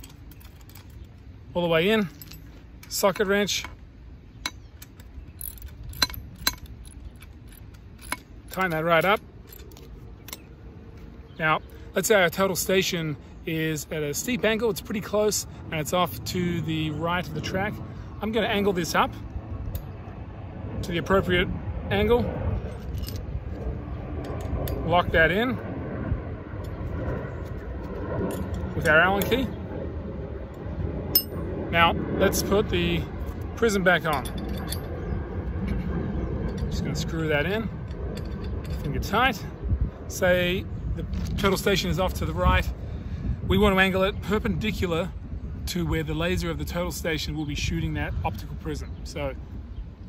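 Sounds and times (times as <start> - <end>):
low outdoor rumble: 0.0 - 50.0
metallic clicks and clinks: 4.5 - 10.5, 34.0 - 35.0.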